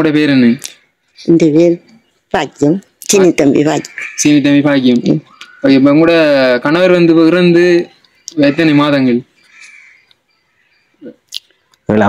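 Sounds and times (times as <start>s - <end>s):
elderly woman speaking: 1.2s - 5.3s.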